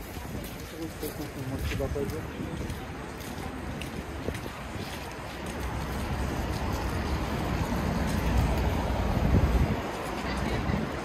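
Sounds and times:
faint footsteps: 0.0 - 11.0
low rumble of traffic: 0.0 - 11.0
wind buffeting microphone: 0.0 - 11.0.

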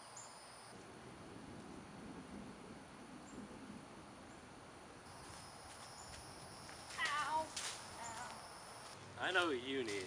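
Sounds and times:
high insect drone: 0.0 - 0.8, 5.1 - 9.0.

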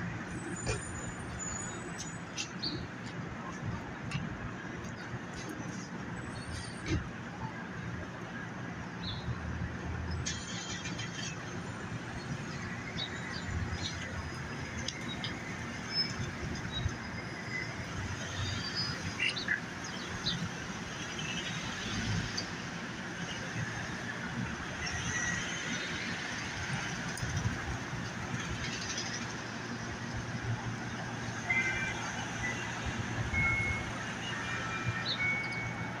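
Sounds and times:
traffic rumble and hiss: 0.0 - 36.0.

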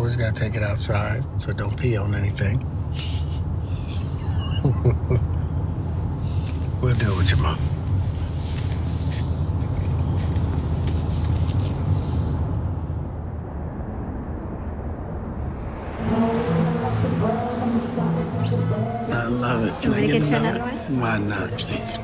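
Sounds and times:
road rumble inside car: 0.0 - 13.4.

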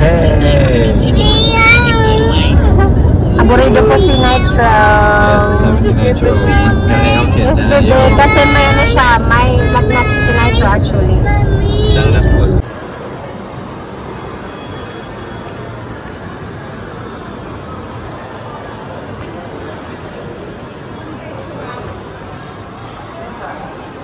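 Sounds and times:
car road noise rumble: 0.0 - 12.6
high-pitched voices: 0.0 - 12.6.

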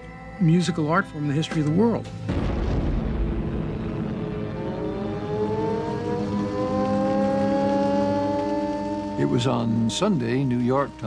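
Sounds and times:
steady low rumble: 2.2 - 6.6.

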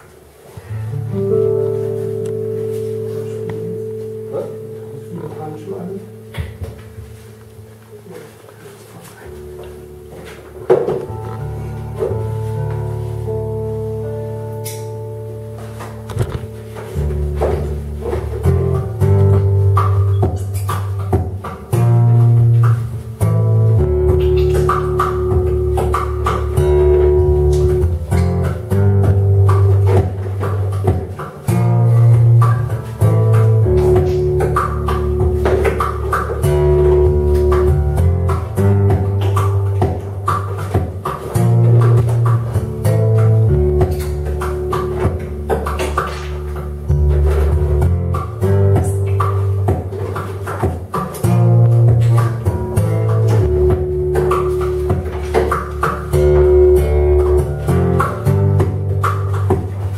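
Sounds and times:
acoustic guitar playing: 0.0 - 59.9.

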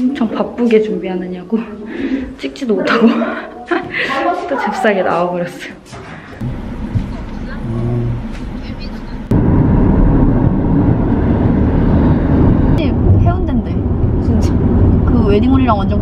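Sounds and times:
room noise: 0.0 - 13.0
car road noise inside cabin: 6.4 - 16.0.

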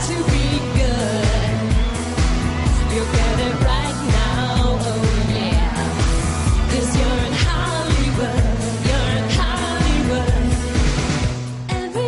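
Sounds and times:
pop dance track with heavy beat: 0.0 - 12.0
woman singing: 0.0 - 12.0.

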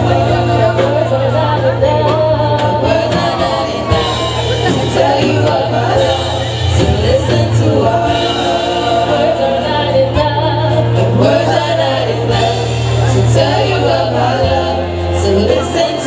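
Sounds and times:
group gospel singing: 0.0 - 16.0
keyboard accompaniment: 0.0 - 16.0.

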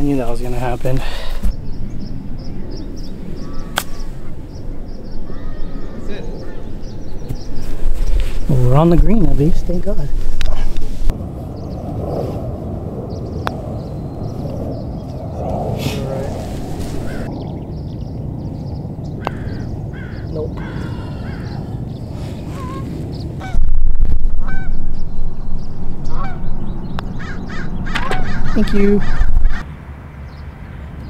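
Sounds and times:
birds calling: 0.0 - 31.0
wind rumbling on microphone: 0.0 - 31.0.

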